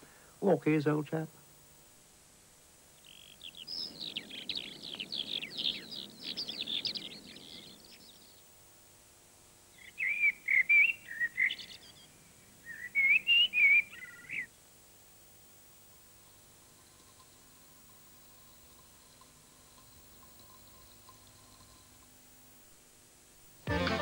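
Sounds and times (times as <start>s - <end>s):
blackbird fluting song: 3.0s - 8.4s, 9.8s - 14.5s.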